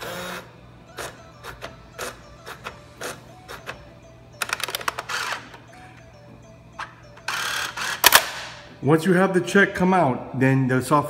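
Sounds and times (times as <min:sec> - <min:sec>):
coin changer mechanism clicks: 0:04.4 - 0:05.6, 0:07.2 - 0:08.6.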